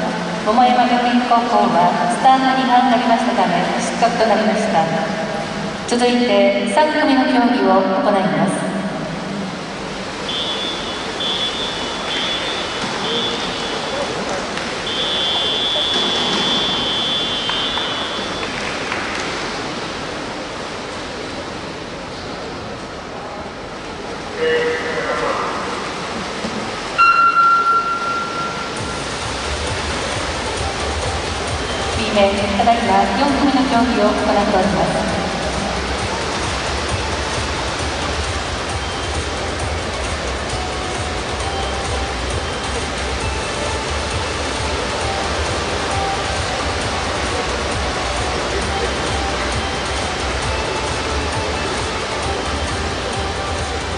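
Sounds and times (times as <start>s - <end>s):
swimmers splashing water: 8.6s - 22.4s, 24.1s - 53.9s
high steady tone: 10.2s - 14.2s, 14.8s - 18.5s, 24.4s - 25.4s, 27.0s - 29.9s.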